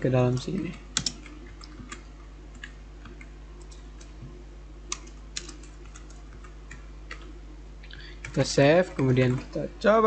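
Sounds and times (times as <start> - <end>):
steady low hum: 0.0 - 10.0
computer keyboard and mouse clicks: 0.3 - 4.1, 4.9 - 7.3.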